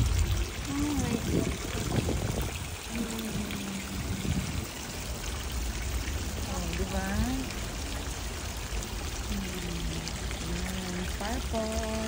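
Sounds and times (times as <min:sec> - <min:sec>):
running water rushing: 0:00.0 - 0:12.0
woman's voice: 0:00.7 - 0:01.8, 0:02.9 - 0:04.2, 0:06.5 - 0:07.5, 0:09.3 - 0:12.0.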